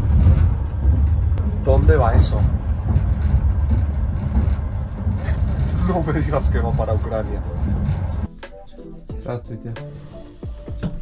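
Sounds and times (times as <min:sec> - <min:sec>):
freight train passing: 0:00.0 - 0:08.5
low rumble of moving train: 0:00.0 - 0:11.0.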